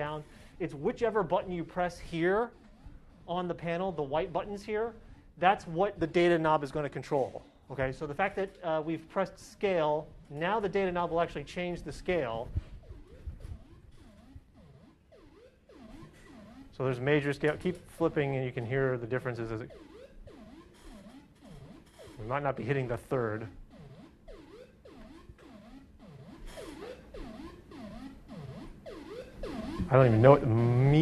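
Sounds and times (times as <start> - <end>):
synthesizer notes swooping in pitch: 0.0 - 6.8, 10.4 - 31.0.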